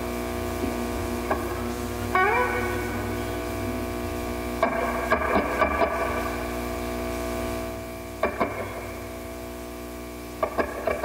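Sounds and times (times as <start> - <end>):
low amplifier hum: 0.0 - 11.0
electric guitar notes ringing: 0.2 - 9.6, 10.4 - 11.0.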